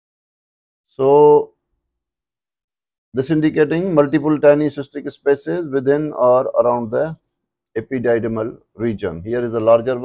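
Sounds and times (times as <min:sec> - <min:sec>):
man speaking: 0:01.0 - 0:01.6, 0:03.2 - 0:07.2, 0:07.8 - 0:10.0.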